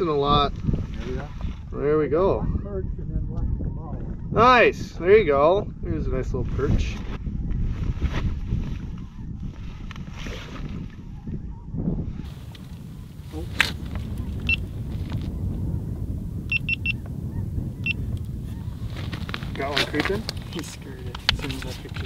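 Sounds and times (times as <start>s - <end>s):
wind buffeting microphone: 0.0s - 22.0s
short high-pitched beeps: 16.5s - 17.0s.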